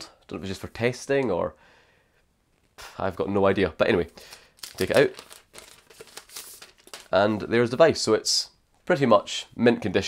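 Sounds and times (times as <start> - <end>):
plastic wrap crinkling: 4.0 - 7.6.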